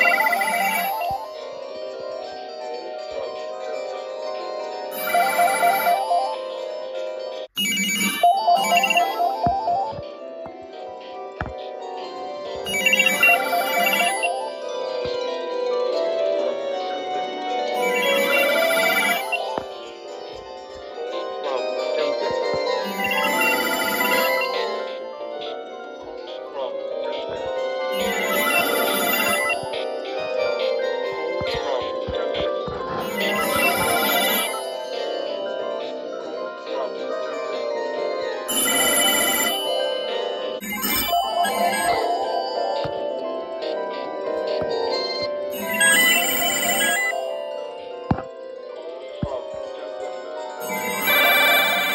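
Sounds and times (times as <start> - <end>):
telephones ringing: 0.0 - 1.3, 5.0 - 6.4, 7.5 - 10.1, 12.6 - 14.7, 17.8 - 20.6, 22.6 - 24.9, 27.9 - 32.1, 33.0 - 35.3, 38.5 - 48.4, 50.6 - 51.9
two-note warble ringtone: 0.0 - 1.4, 4.9 - 6.7, 7.6 - 10.1, 12.6 - 14.8, 17.7 - 20.4, 21.4 - 25.0, 27.9 - 32.0, 33.0 - 36.1, 38.5 - 48.4, 50.6 - 51.9.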